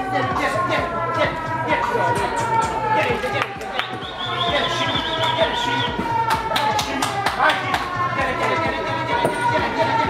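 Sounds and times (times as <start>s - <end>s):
background music with held notes: 0.0s - 10.0s
quick hand claps: 6.2s - 8.0s.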